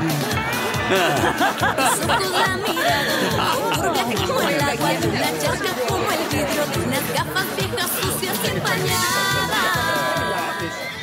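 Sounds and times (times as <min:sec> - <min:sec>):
background music: 0:00.0 - 0:11.0
murmured chatter: 0:00.0 - 0:11.0.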